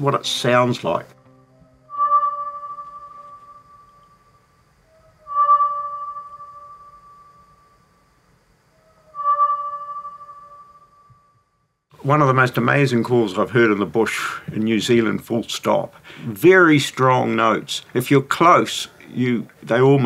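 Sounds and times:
bell-like bird call: 1.6 - 4.2, 5.2 - 7.5, 8.9 - 11.0.

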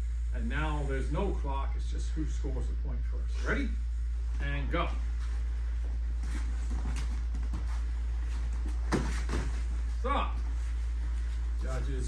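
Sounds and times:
steady low hum: 0.0 - 12.0
shuffling steps on foam mats: 4.9 - 12.0
kick thud: 8.6 - 9.8.

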